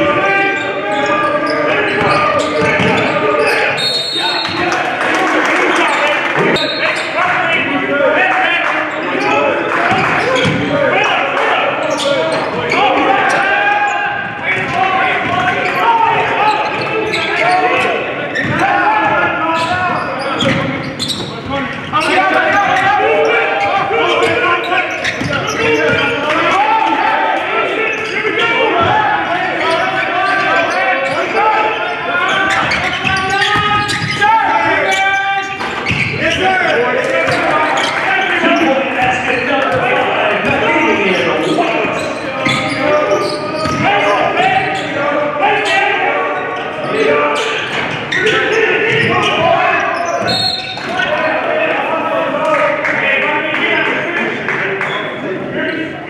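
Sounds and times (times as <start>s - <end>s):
voices echoing in gym: 0.0s - 56.0s.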